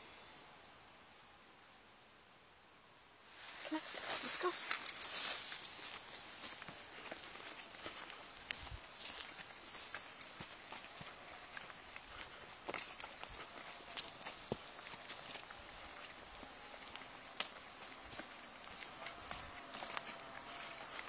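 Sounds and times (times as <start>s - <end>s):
footsteps on dirt trail: 3.4s - 21.0s.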